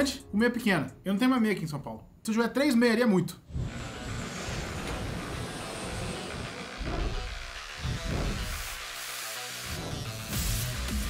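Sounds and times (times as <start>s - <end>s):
noisy rumble: 3.4s - 9.0s
intro music: 5.4s - 11.0s.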